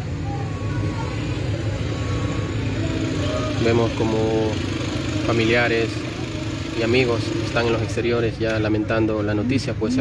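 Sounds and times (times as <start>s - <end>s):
faint voices: 0.0s - 10.0s
vehicle engine idling: 0.0s - 10.0s.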